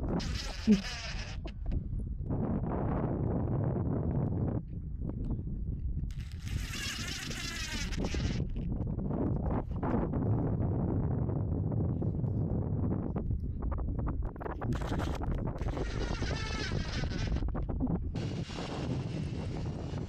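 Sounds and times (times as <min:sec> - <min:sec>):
wind noise on microphone: 0:00.0 - 0:20.0
cordless driver whirring: 0:00.2 - 0:01.5, 0:06.1 - 0:08.6.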